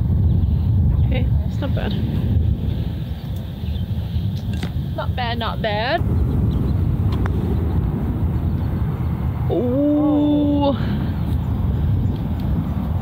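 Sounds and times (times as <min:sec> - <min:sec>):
wind rumbling on microphone: 0:00.0 - 0:13.0
woman exclaiming: 0:09.5 - 0:10.9.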